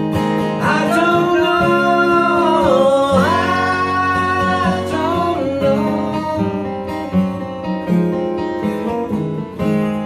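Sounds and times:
acoustic guitars playing: 0.0 - 10.0.

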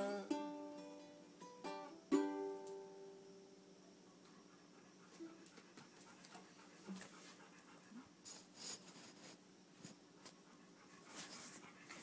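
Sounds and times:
faint steady hum: 0.0 - 12.0
faint clicks and rustles: 4.2 - 12.0.

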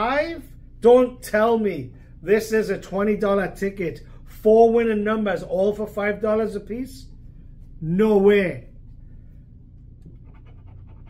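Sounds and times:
low room hum: 0.0 - 11.0
coin scratching lottery ticket: 10.1 - 11.0.

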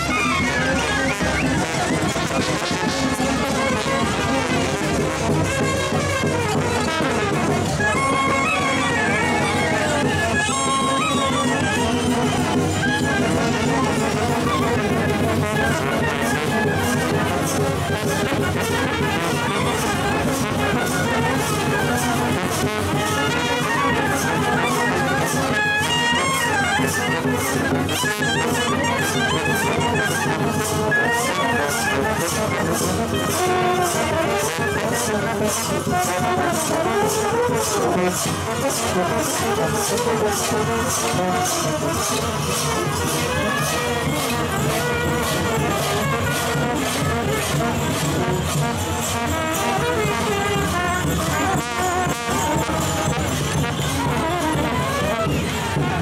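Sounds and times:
brass band playing dance tune: 0.0 - 56.0
percussion beat: 0.0 - 56.0.

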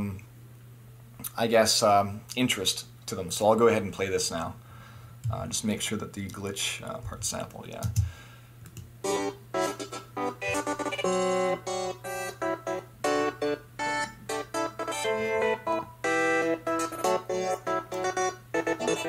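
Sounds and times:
glitchy electronic music: 9.1 - 19.0.

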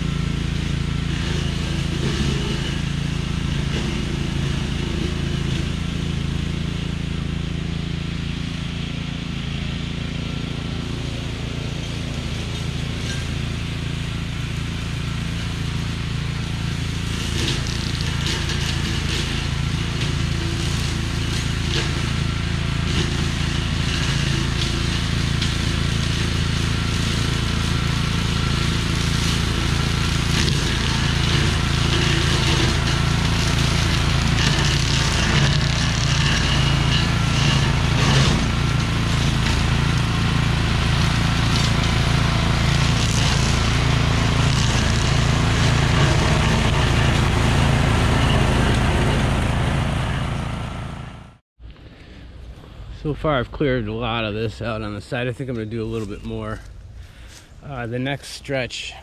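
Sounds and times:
brush cutter engine running: 0.0 - 53.7.

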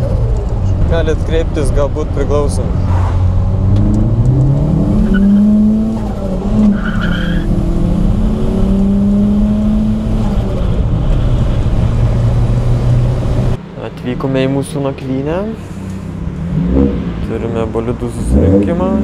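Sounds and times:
car engine from inside cabin: 0.0 - 6.8, 7.4 - 13.6.

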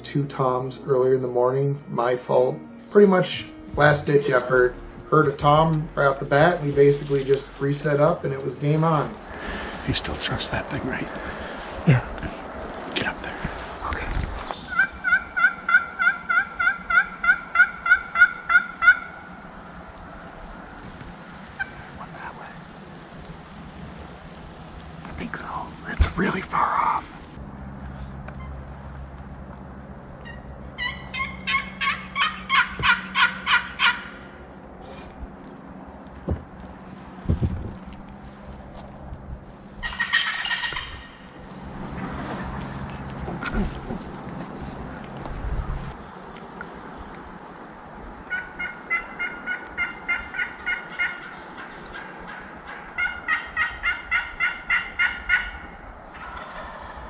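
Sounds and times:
turkey rattling gobble: 14.7 - 19.3, 21.6 - 21.9, 30.2 - 34.3, 39.8 - 41.3, 48.3 - 57.0
turkey yelping: 14.7 - 19.3, 21.6 - 22.0, 30.2 - 34.4, 39.8 - 41.4, 48.3 - 57.0.

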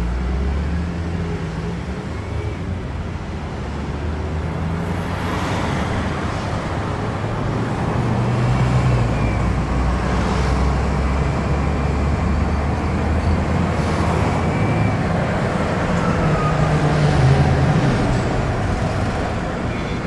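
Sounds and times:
tyre and road noise: 0.0 - 20.0.

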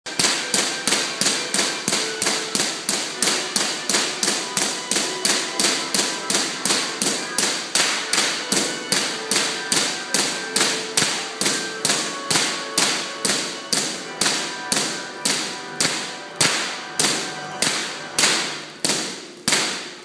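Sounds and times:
electric sparks cracking: 0.1 - 20.0.

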